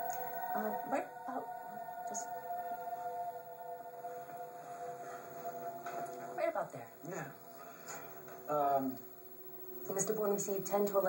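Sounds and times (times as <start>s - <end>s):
soundtrack drone of steady tones: 0.0s - 11.0s.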